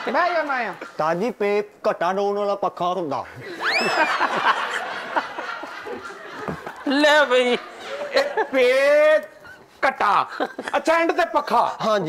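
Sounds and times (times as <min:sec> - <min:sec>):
group laughter: 0:00.0 - 0:01.0, 0:03.4 - 0:11.2.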